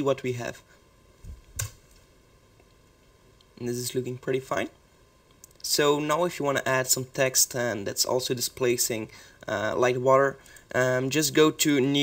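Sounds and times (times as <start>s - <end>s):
sharp click: 1.6s - 1.8s.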